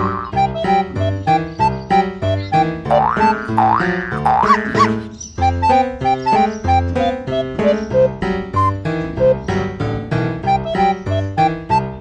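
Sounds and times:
bouncy keyboard music: 0.0s - 12.0s
swooping boing sound effect: 2.9s - 5.0s.

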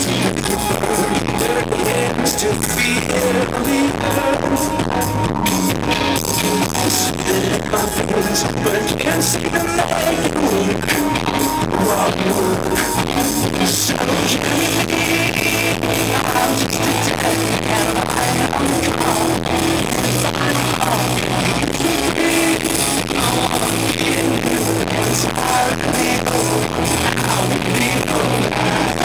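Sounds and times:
bass: 0.0s - 29.0s
electric guitars: 0.0s - 29.0s
steady drum beat: 0.0s - 29.0s.

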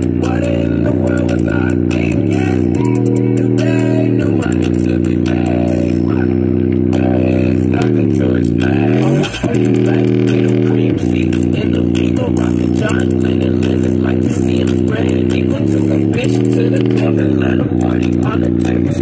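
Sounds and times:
deep sustained bass notes: 0.0s - 19.0s
hip-hop song on speaker: 0.0s - 19.0s.

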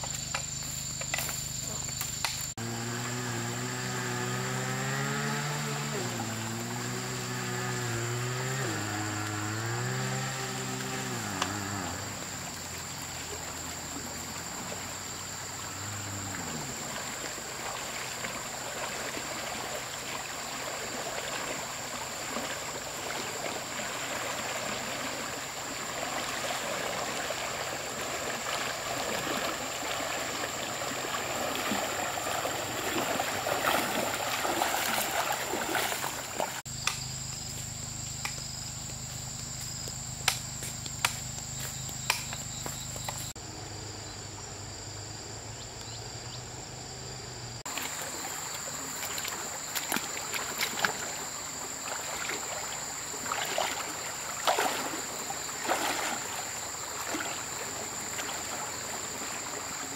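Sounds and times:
high-pitched insect drone: 0.0s - 26.6s
person wading through stream: 0.0s - 43.4s, 47.6s - 59.9s.

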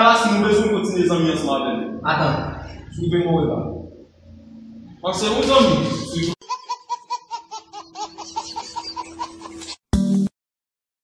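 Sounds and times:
man's voice: 0.0s - 3.9s, 5.0s - 6.4s
baby laughing: 5.4s - 9.8s.

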